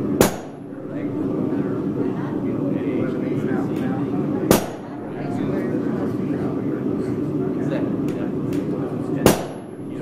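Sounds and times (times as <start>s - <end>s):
low workshop murmur: 0.0s - 10.0s.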